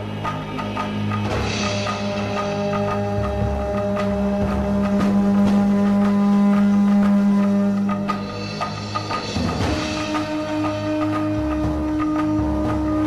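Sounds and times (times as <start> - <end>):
wooden horns droning: 0.0 - 13.0.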